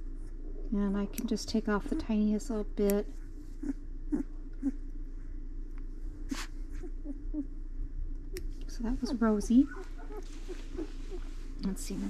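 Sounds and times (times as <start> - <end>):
steady low hum: 0.0 - 12.0
puppy grunts and squeaks: 6.3 - 7.5, 9.6 - 11.3.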